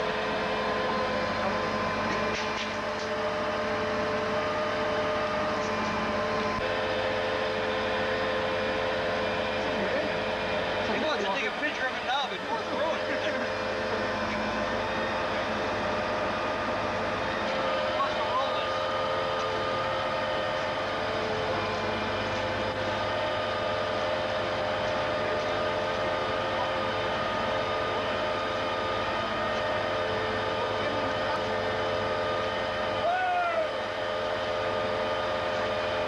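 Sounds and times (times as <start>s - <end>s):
diesel truck running with whine: 0.0s - 36.0s.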